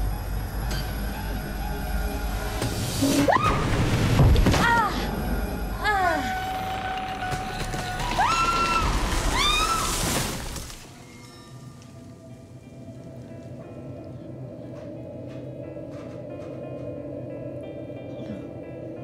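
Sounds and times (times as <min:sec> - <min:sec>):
soft ambient music: 0:00.0 - 0:09.8, 0:10.7 - 0:19.0.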